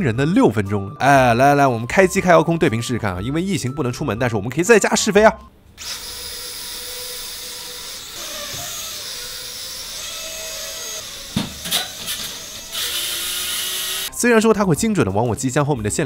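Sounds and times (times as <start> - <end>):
toy drone propeller whine: 5.8 - 14.1.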